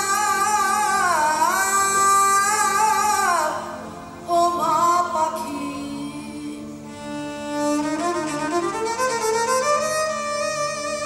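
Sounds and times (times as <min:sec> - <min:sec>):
bowed string melody: 0:00.0 - 0:11.0.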